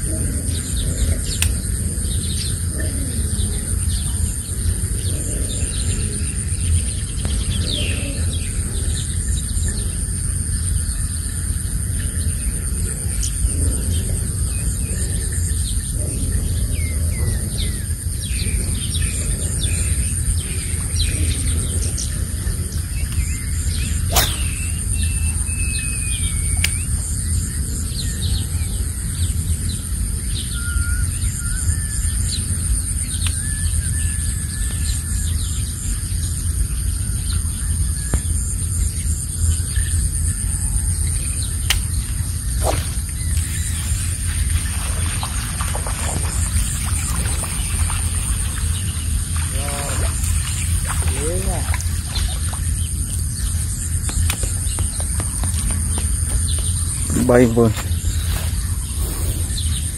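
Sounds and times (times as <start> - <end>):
steady high drone: 0.0 - 30.3
birds chirping and calling: 0.0 - 38.3, 39.4 - 59.9
constant low rumble: 0.0 - 59.9.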